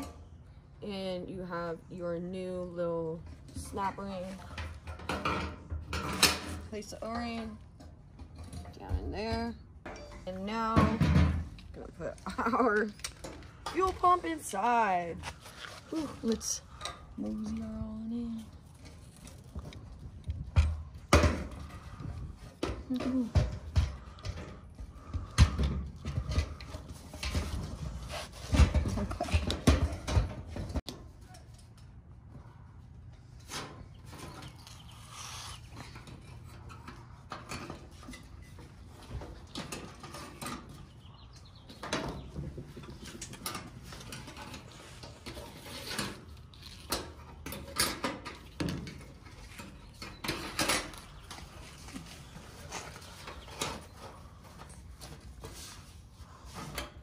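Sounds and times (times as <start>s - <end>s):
knocks and rattles of handling: 3.2s - 34.9s, 35.7s - 57.0s.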